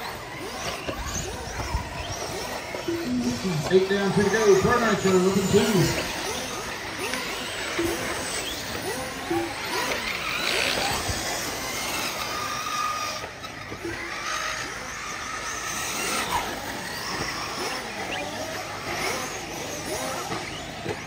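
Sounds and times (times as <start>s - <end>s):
small nitro engines revving: 0.0s - 21.0s.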